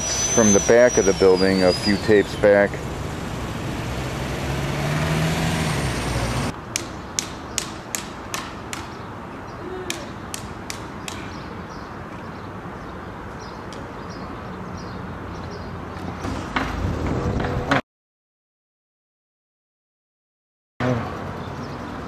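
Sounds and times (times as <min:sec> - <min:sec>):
street noise: 0:00.0 - 0:17.8, 0:20.8 - 0:22.0
car driving past: 0:01.1 - 0:06.5.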